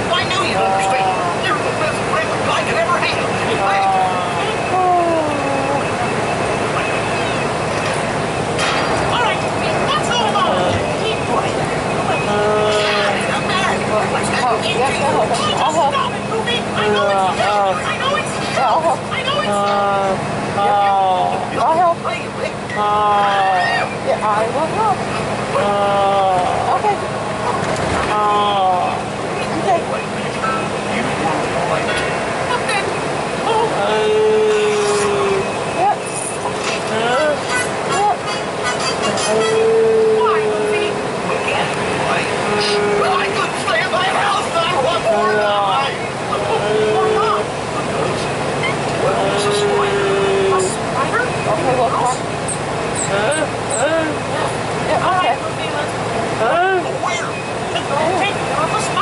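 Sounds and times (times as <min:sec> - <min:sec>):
bus cabin drone: 0:00.0 - 0:59.0
voices: 0:00.0 - 0:59.0.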